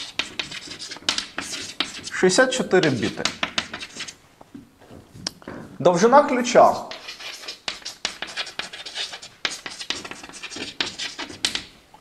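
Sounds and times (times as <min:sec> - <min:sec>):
chalk scratching on blackboard: 0:00.0 - 0:04.2, 0:06.5 - 0:11.7.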